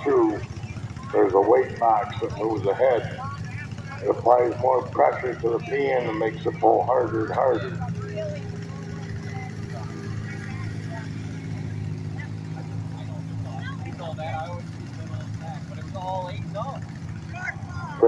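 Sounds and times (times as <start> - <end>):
faint voices: 0.0 - 18.0
garden tractor engine running: 0.0 - 18.0.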